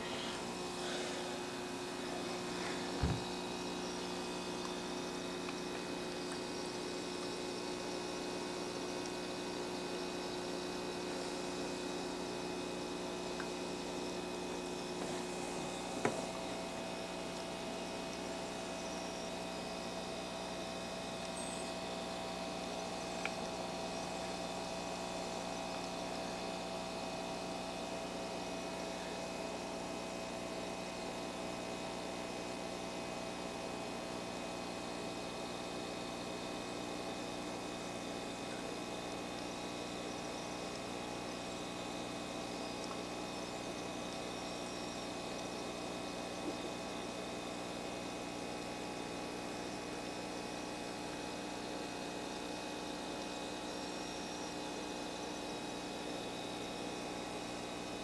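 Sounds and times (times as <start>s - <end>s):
steady mechanical hum: 0.0s - 58.0s.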